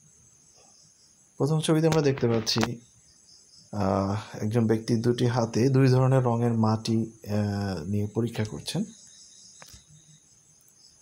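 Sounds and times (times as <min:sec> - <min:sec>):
high-pitched insect chirping: 0:00.0 - 0:11.0.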